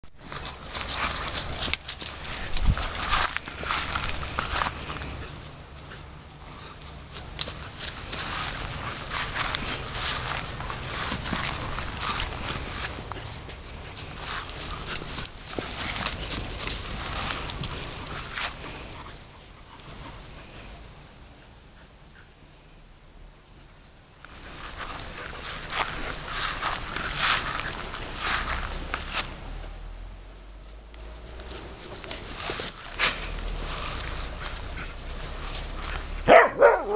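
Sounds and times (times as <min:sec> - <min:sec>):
dogs scuffling: 0:00.0 - 0:21.2, 0:24.2 - 0:29.9, 0:30.6 - 0:36.9.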